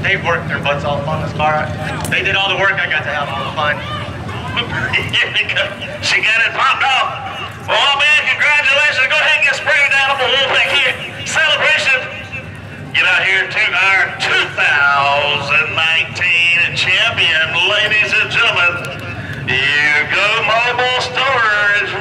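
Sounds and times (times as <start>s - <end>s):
low steady rumble: 0.0s - 22.0s
men talking and shouting: 0.0s - 22.0s.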